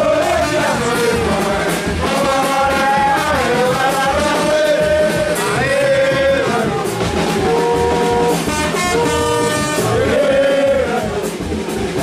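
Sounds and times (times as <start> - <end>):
horn-like blown notes: 0.0 - 11.3
steady drum beat: 0.0 - 12.0.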